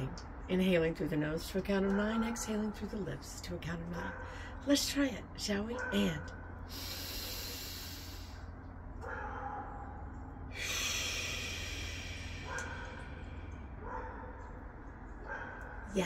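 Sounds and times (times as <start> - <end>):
faint low hum: 0.0 - 16.0
woman breathing in through nose: 6.7 - 8.5, 10.5 - 13.7.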